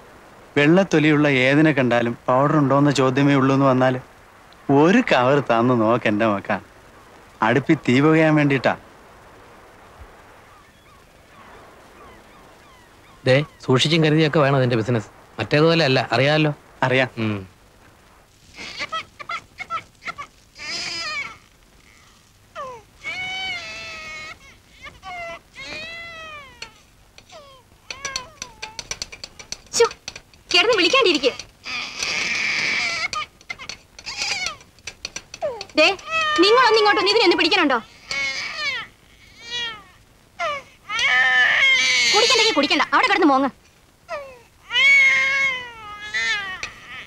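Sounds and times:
high-pitched wailing cries: 18.4s - 43.2s, 44.1s - 47.0s
animal high-pitched calls: 18.6s - 29.9s, 30.5s - 39.8s.

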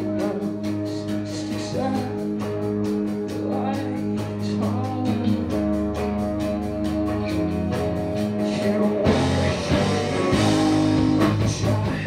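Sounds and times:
bass guitar: 0.0s - 12.0s
electric guitar chords: 0.0s - 12.0s
steady beat: 0.0s - 12.0s.

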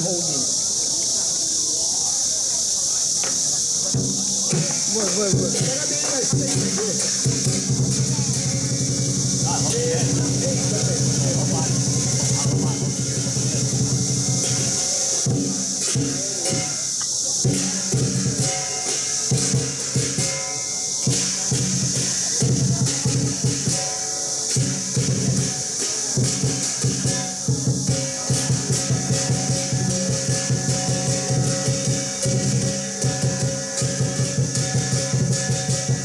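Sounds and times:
large drum beating: 3.8s - 36.0s
cymbals and gong clashing: 3.9s - 36.0s.

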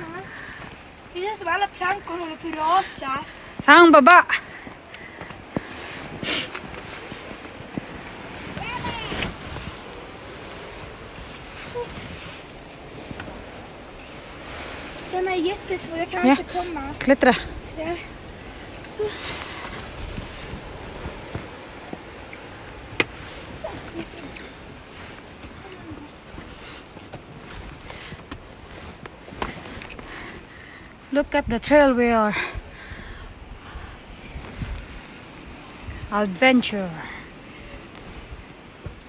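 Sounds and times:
footsteps on wooden planks: 4.5s - 15.1s, 18.2s - 30.4s, 38.0s - 39.0s
rustling dry leaves: 4.6s - 31.1s
breathy sniff or exhale: 5.0s - 7.1s.

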